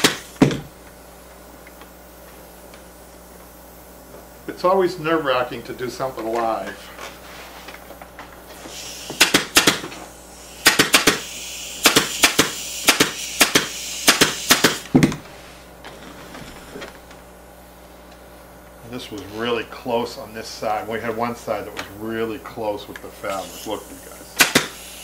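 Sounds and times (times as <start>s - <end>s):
pneumatic staple gun firing: 0.0s - 0.7s, 8.6s - 15.1s, 24.4s - 25.0s.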